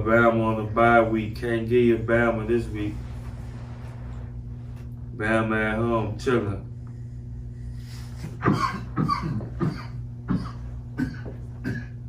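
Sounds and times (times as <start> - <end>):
low electrical hum: 0.0 - 12.0
man coughing: 8.2 - 12.0.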